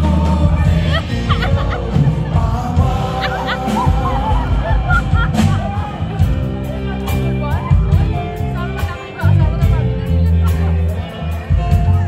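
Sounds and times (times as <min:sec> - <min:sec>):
bass and drums: 0:00.0 - 0:12.0.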